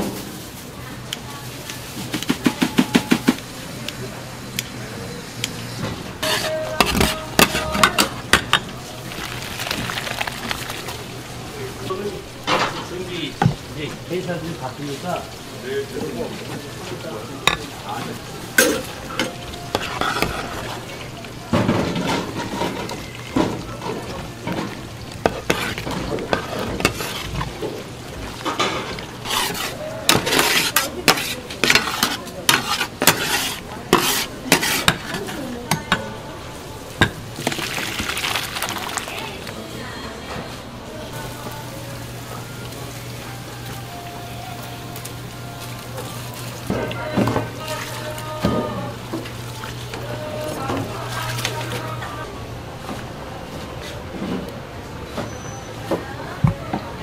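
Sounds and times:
food frying in oil: 0.0s - 39.6s, 41.1s - 52.3s
metal utensils scraping steel pan: 6.2s - 8.6s, 18.6s - 21.0s, 23.8s - 27.6s, 28.4s - 36.0s
metal skimmer and tongs clinking: 34.5s - 36.2s.

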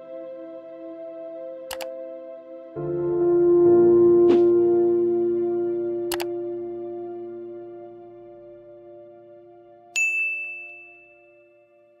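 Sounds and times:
soft held chord: 0.0s - 12.0s
bright bell ding: 10.0s - 11.6s.

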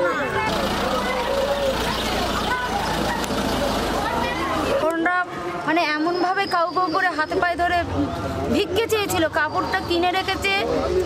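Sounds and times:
people talking: 0.0s - 11.0s
low engine hum: 0.4s - 4.8s.

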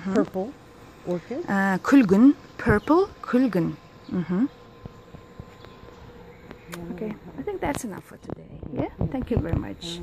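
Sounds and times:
woman speaking: 0.0s - 4.5s, 6.7s - 10.0s
faint buzzing hum: 0.0s - 10.0s.

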